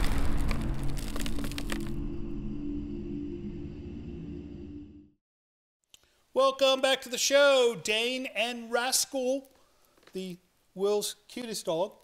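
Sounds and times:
sharp cracks: 0:00.0 - 0:02.0
low musical drone: 0:01.6 - 0:05.1.

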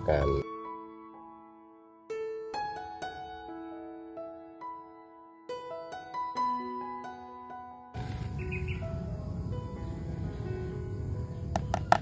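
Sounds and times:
soft piano music: 0:00.0 - 0:12.0.

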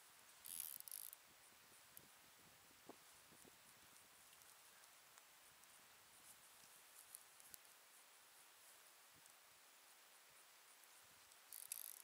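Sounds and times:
fishing reel clicking rapidly: 0:00.4 - 0:01.2, 0:11.5 - 0:12.0.

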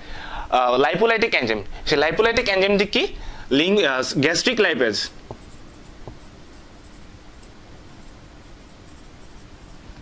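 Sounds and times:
marker pen scratching on whiteboard: 0:05.2 - 0:10.0.

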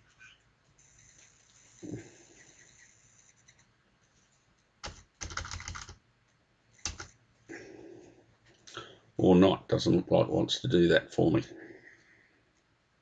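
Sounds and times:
keyboard typing: 0:04.8 - 0:06.0, 0:06.8 - 0:07.2.

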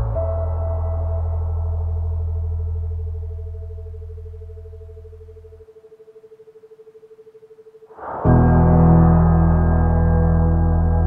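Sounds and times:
pulsing steady tone: 0:00.0 - 0:11.0
deep gong-like tone: 0:08.0 - 0:11.0.

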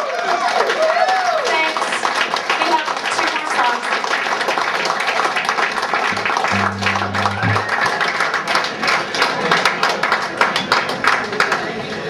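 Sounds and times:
electric guitar through amplifier: 0:06.1 - 0:07.8
low buzzing guitar note: 0:06.2 - 0:07.8.

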